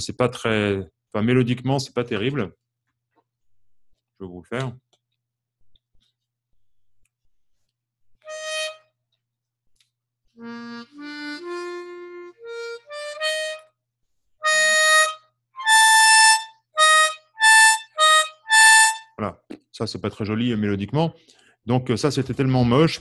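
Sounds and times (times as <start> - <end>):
harmonica notes: 8.2 - 9.0, 10.4 - 13.8, 14.4 - 19.2.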